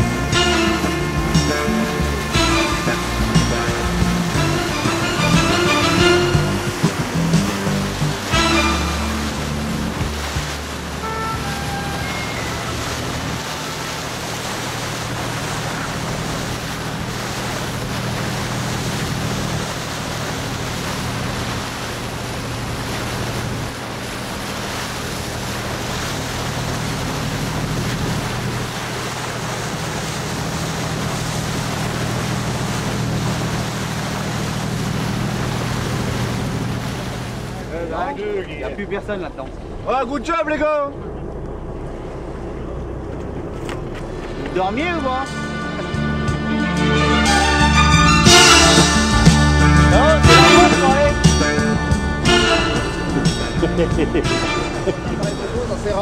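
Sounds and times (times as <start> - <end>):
music: 0.0 - 13.0, 44.6 - 56.0
boat engine humming: 0.0 - 56.0
sea water noise: 0.0 - 56.0
wind: 0.0 - 56.0.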